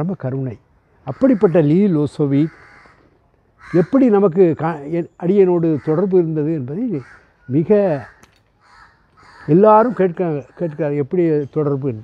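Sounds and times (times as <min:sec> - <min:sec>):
man speaking: 0:00.0 - 0:02.6, 0:03.7 - 0:08.2, 0:09.5 - 0:12.0.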